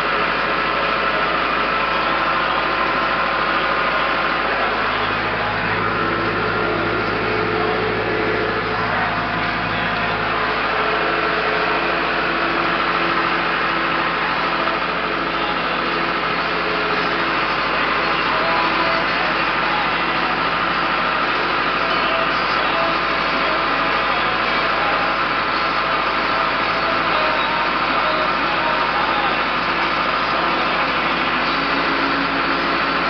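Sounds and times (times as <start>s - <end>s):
tractor engine running: 0.0s - 33.0s.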